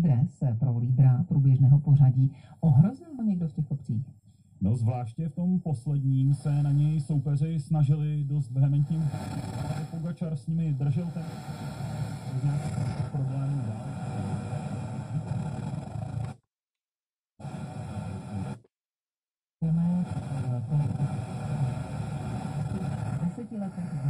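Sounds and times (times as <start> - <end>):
radio talk broadcast voice: 2.1 - 15.5, 19.6 - 24.0
radio reception noise: 4.6 - 16.4, 19.6 - 24.0.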